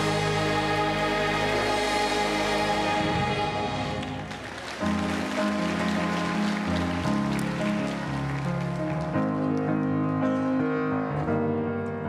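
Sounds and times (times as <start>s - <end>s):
congregation applauding: 0.0s - 10.2s
piano and organ chords: 0.0s - 12.0s.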